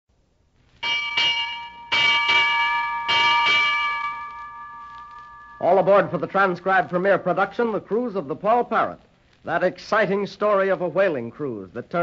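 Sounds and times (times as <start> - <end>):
ship's bell ringing: 0.8 - 7.2.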